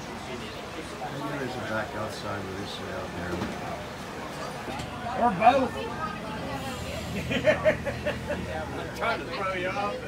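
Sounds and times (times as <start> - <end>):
man laughing: 7.2 - 8.6.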